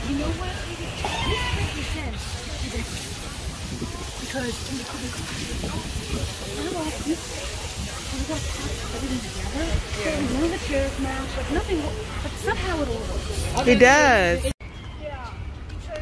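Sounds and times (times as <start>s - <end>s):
indistinct voices talking: 0.0s - 15.9s.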